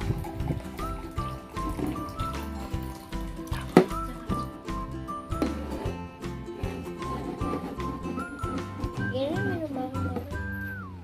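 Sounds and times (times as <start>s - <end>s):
water pouring into glass: 0.0s - 4.9s
music with steady beat: 0.0s - 11.0s.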